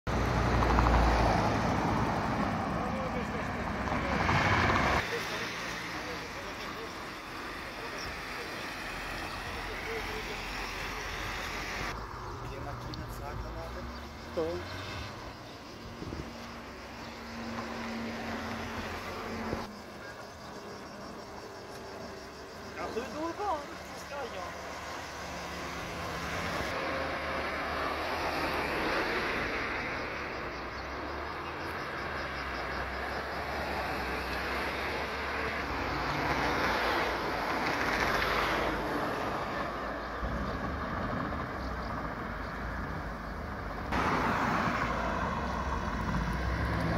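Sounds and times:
road traffic passing: 0:00.0 - 0:46.9
people talking: 0:02.8 - 0:04.4, 0:05.0 - 0:11.3, 0:12.4 - 0:14.7, 0:22.7 - 0:24.6.

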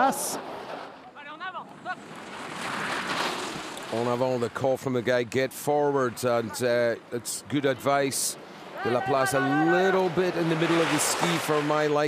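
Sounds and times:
skis hissing over hard snow: 0:02.4 - 0:04.0.

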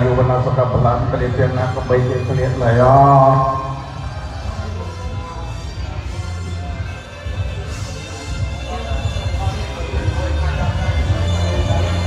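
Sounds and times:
monk chanting through a microphone: 0:00.0 - 0:04.0.

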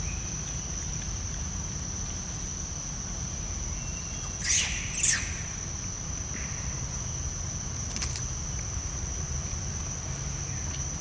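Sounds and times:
high insect drone: 0:00.0 - 0:11.0
high-pitched animal calls: 0:04.4 - 0:05.7.

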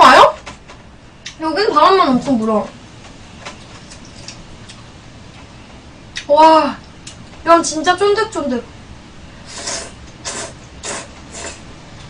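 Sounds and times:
person slurping noodles: 0:09.4 - 0:11.7.

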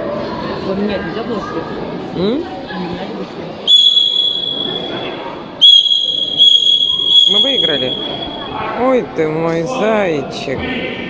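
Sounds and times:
long high whistle blasts: 0:03.7 - 0:08.5.

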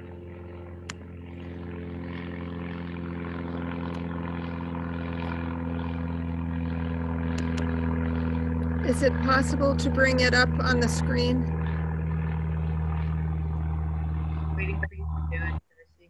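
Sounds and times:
steady engine drone: 0:00.0 - 0:16.0.

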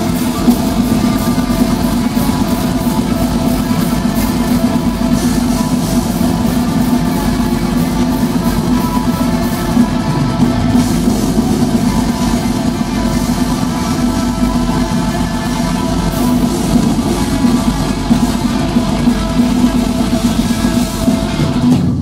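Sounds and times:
bass guitar: 0:00.0 - 0:22.0
distorted electric guitars: 0:00.0 - 0:22.0
drum kit with fast cymbal hits: 0:00.0 - 0:22.0.

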